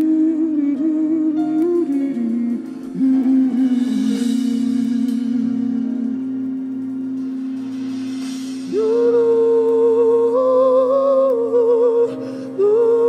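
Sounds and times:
person singing wordlessly: 0.0s - 6.5s, 8.7s - 13.0s.

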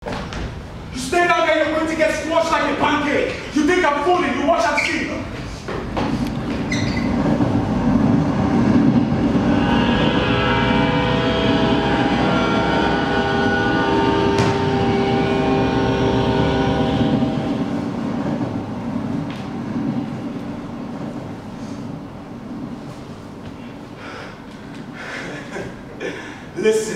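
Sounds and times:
train rumbling: 0.5s - 26.1s
multi-note train horn: 9.1s - 18.0s.

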